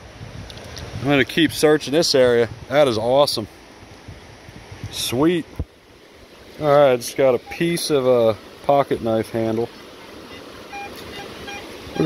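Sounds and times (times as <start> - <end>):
water running over rocks: 0.4 - 12.0
faint short tones: 10.3 - 12.0.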